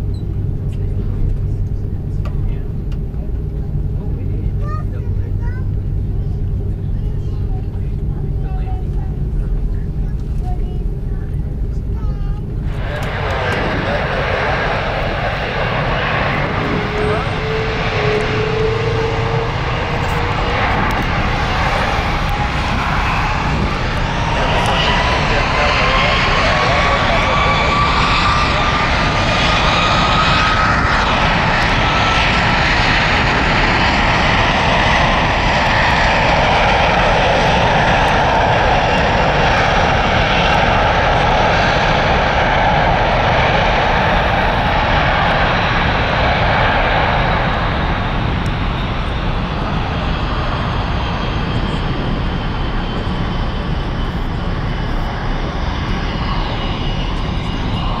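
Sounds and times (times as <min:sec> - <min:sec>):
jet engines spooling up: 0:06.5 - 0:58.0.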